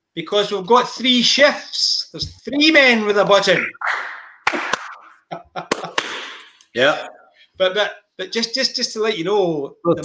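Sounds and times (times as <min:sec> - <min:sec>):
sharp hand claps: 0:03.9 - 0:06.6
men laughing: 0:05.0 - 0:06.2.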